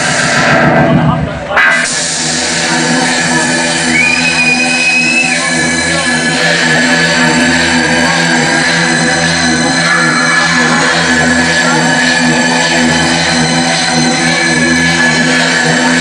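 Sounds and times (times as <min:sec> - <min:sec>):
distorted hardcore electronic music: 0:00.0 - 0:16.0
high held tone: 0:00.0 - 0:16.0.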